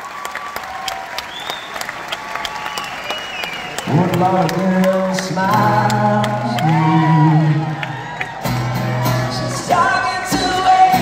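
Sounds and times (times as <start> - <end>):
crowd whooping and cheering: 0.0 - 4.7, 6.0 - 11.0
man singing: 3.8 - 7.9, 9.0 - 11.0.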